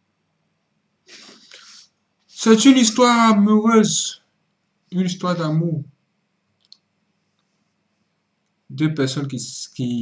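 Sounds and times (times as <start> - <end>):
man inhaling sharply: 1.1 - 2.0.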